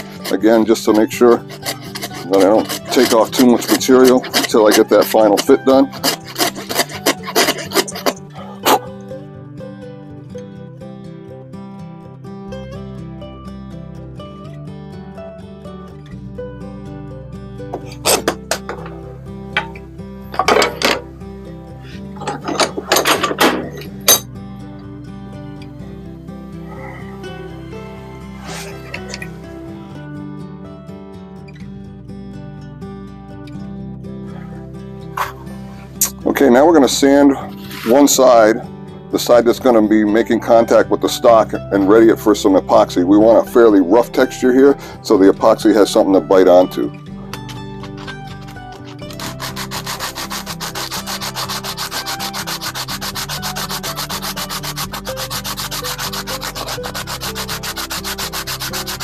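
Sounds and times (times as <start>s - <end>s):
coping saw cutting wood: 0.0s - 8.9s, 26.6s - 29.6s, 37.4s - 38.2s, 47.9s - 59.0s
background music: 0.0s - 59.0s.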